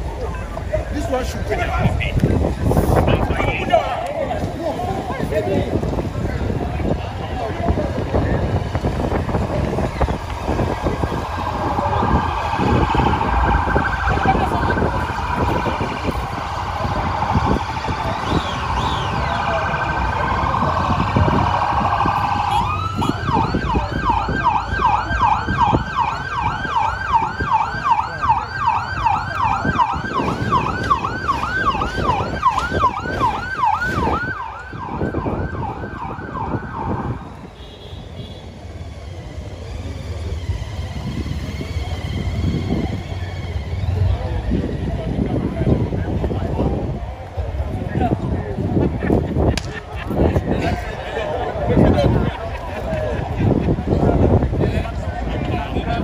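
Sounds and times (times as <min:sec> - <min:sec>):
emergency siren wailing: 0:07.9 - 0:37.9.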